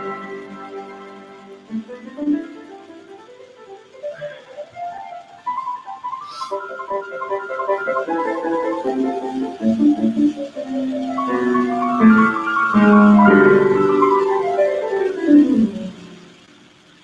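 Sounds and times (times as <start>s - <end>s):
instrumental background music: 0.0s - 17.0s
short hiss: 6.1s - 6.8s.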